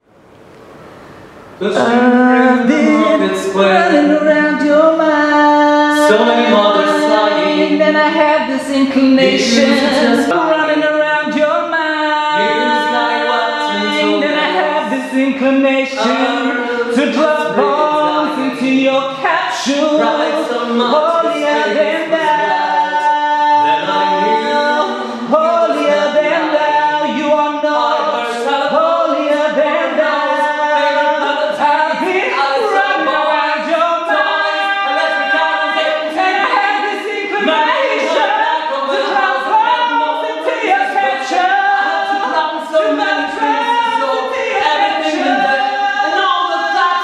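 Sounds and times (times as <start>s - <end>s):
group singing a cappella: 1.6s - 47.0s.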